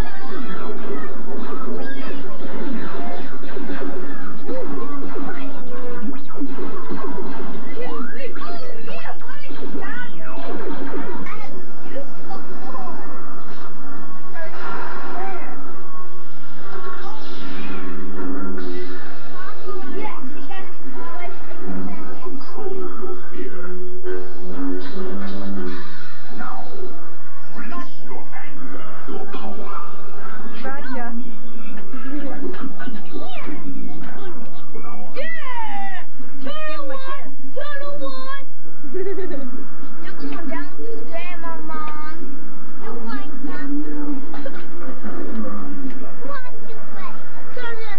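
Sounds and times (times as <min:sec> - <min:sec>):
television music: 0:00.0 - 0:47.9.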